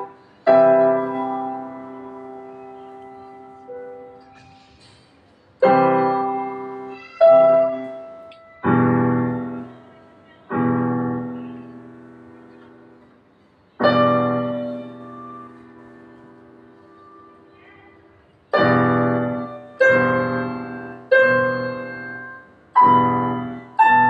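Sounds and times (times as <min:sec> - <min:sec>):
keyboard piano chords: 0:00.0 - 0:24.0.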